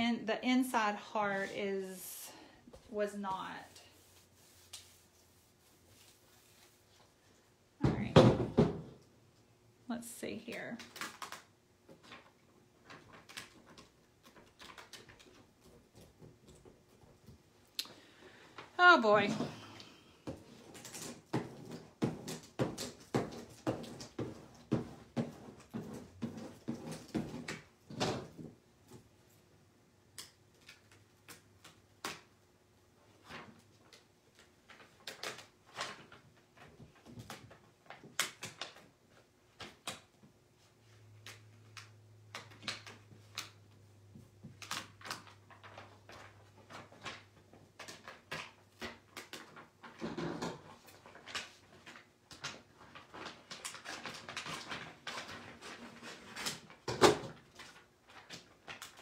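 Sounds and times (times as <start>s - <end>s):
squeegee rubbing plastic: 3.6s - 7.0s
plastic sheet crackling: 50.8s - 59.0s.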